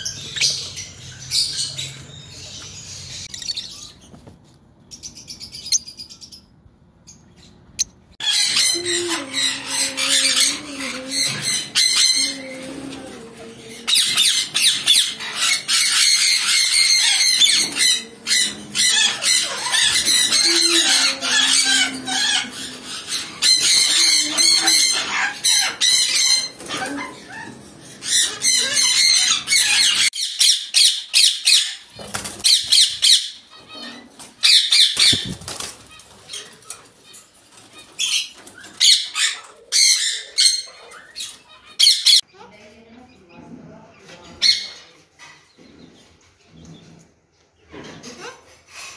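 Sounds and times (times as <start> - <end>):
parrots screeching: 8.2 - 42.2.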